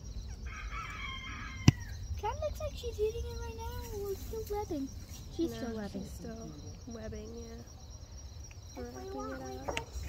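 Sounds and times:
rooster crowing: 0:00.4 - 0:02.0.

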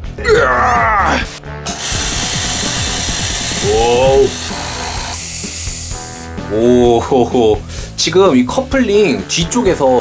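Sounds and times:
man exclaiming: 0:00.2 - 0:01.4
rapid mechanical rattle: 0:01.7 - 0:05.9
compressed air hissing: 0:01.7 - 0:06.4.

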